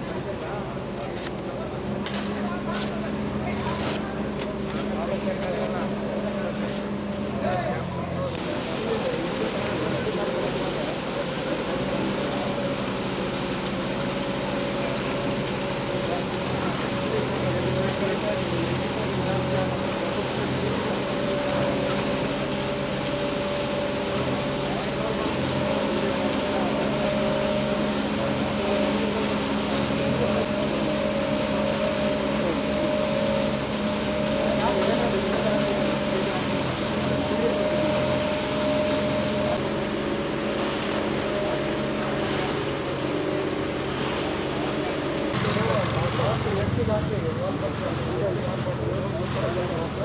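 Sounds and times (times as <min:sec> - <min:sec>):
people's voices: 0:00.0 - 0:13.9, 0:14.7 - 0:39.7, 0:44.6 - 0:50.0
concrete mixer engine running: 0:00.0 - 0:50.0
concrete pouring down chute: 0:00.0 - 0:50.0.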